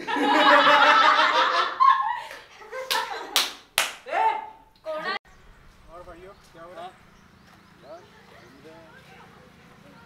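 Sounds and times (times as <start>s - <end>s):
group laughing and talking: 0.0s - 5.2s
sharp hand claps: 2.3s - 4.1s.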